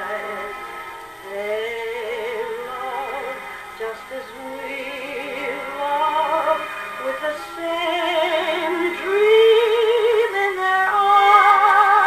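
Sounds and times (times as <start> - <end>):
woman singing with vibrato: 0.0 - 12.0.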